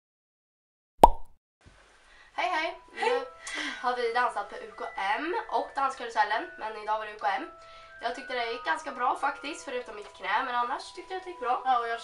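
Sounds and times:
short sharp pop: 1.0 - 1.3.

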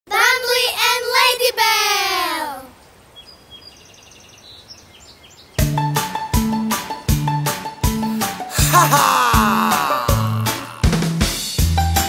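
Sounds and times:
faint bird chirps: 2.8 - 5.6
backing music with steady beat: 5.6 - 9.5, 10.1 - 12.0.

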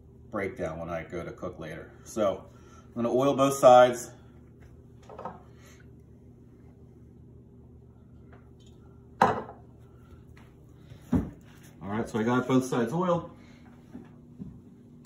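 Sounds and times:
low hum: 0.0 - 11.9.

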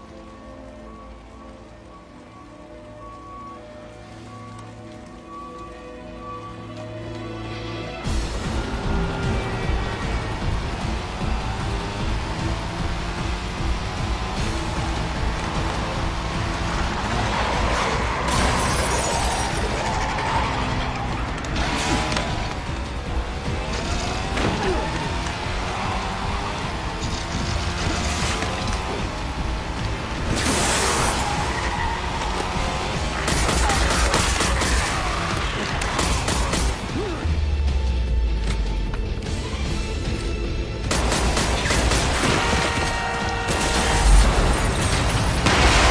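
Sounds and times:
dramatic music: 0.0 - 45.9
motorcycle engine: 8.0 - 34.1
crash and impact effects: 43.8 - 45.9.

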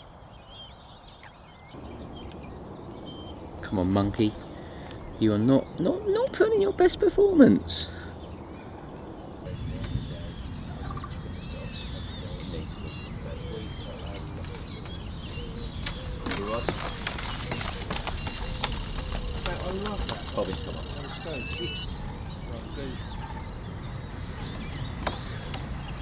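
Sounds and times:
birds calling and singing: 0.0 - 26.0
wind rumble on microphone: 8.1 - 26.0
footsteps on wooden boards: 14.8 - 20.8.

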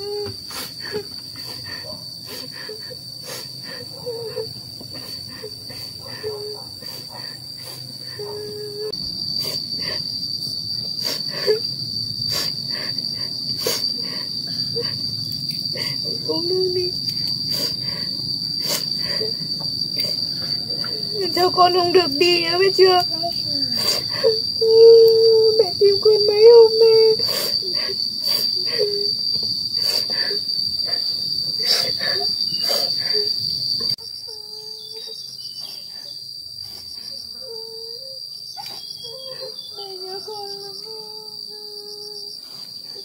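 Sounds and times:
insects chirring: 0.0 - 43.0.

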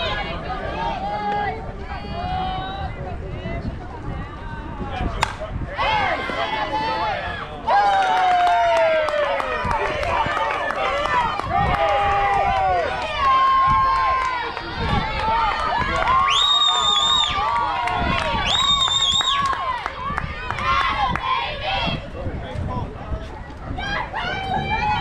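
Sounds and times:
spectators shouting and cheering: 4.4 - 22.1, 23.7 - 25.0
bat cracking ball: 5.2 - 5.5.

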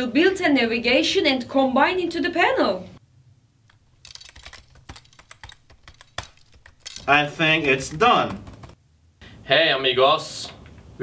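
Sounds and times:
fast typing on keyboard: 3.7 - 8.8.

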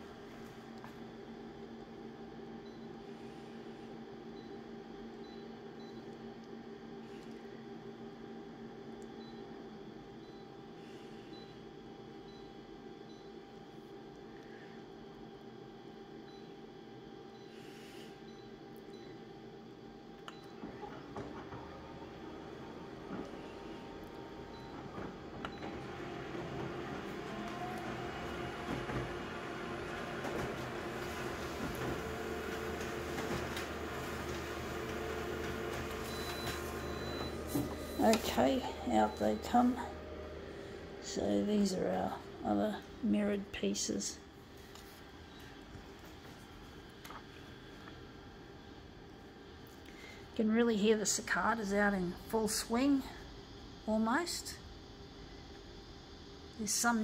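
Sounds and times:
copier humming: 0.0 - 57.0
copier motors whining: 18.5 - 49.7.

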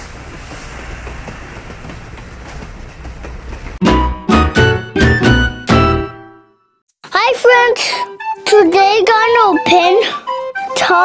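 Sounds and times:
wheels clicking over track: 0.0 - 3.8
loud music: 3.8 - 6.3.

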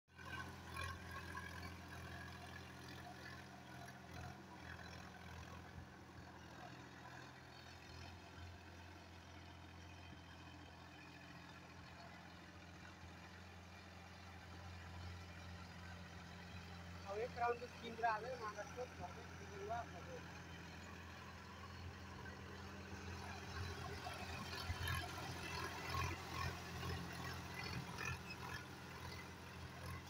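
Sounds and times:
tractor diesel engine humming: 0.3 - 30.0.

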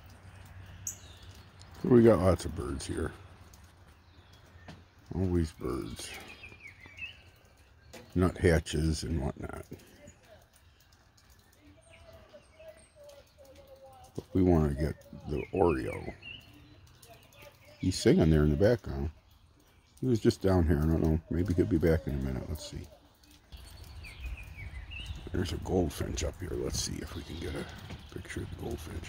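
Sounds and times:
distant songbird singing: 0.0 - 29.0
faint high bird chirps: 9.6 - 20.1.

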